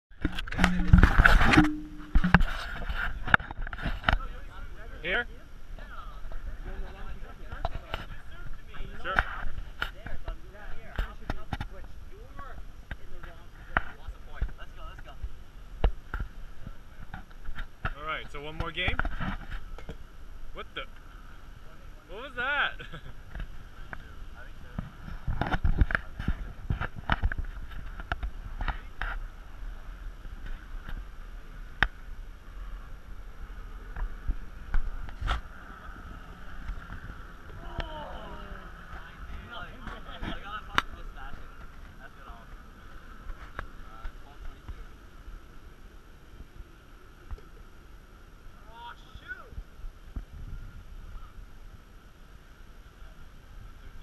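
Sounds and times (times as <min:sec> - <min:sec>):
wind rumbling on microphone: 0:00.1 - 0:22.1, 0:22.8 - 0:54.0
players' voices: 0:03.0 - 0:15.4, 0:35.4 - 0:47.1.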